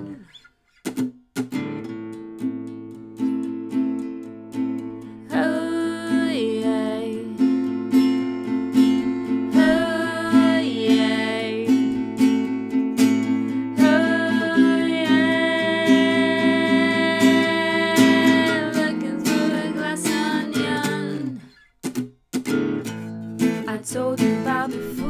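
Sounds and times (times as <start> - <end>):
woman singing long notes: 0.0 - 0.2, 5.2 - 7.4, 9.5 - 11.9, 13.8 - 21.4
acoustic guitar strumming: 0.0 - 25.0.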